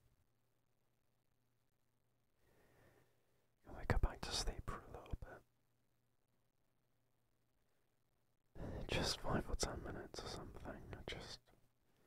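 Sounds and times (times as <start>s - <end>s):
man whispering: 3.6s - 5.6s, 8.6s - 11.6s.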